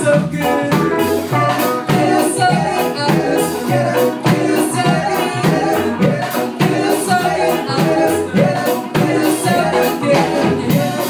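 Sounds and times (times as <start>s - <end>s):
drum kit: 0.0s - 11.0s
electric guitars: 0.0s - 11.0s
keyboard: 0.0s - 11.0s
person singing: 0.0s - 11.0s.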